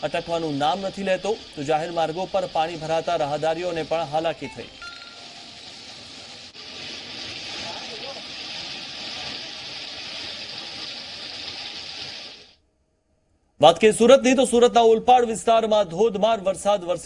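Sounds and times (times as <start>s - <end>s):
heavy rain pouring on street: 4.9s - 12.4s.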